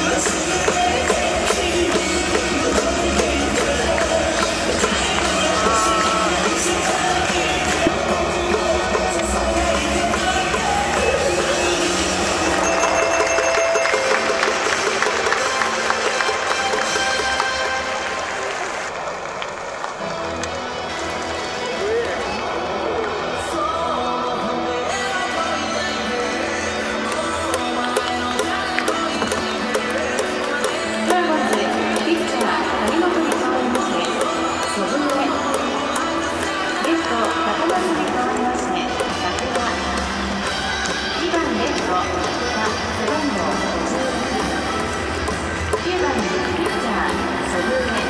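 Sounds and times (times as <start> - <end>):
crowd noise: 0.0 - 48.0
music over public address system: 0.0 - 48.0.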